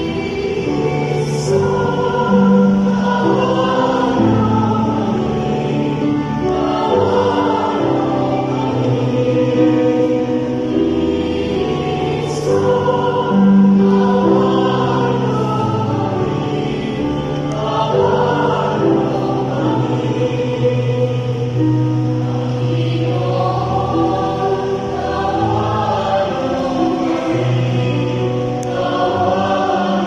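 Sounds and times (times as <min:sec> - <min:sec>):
choir singing a hymn: 0:00.0 - 0:30.0.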